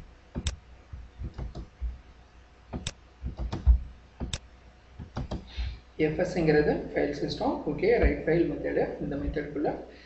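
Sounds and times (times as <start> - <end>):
computer keyboard clicks: 2.8 - 4.4, 5.0 - 5.5.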